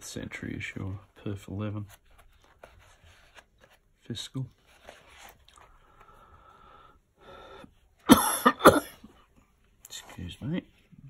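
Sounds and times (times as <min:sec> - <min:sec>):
person coughing: 0:08.1 - 0:09.1.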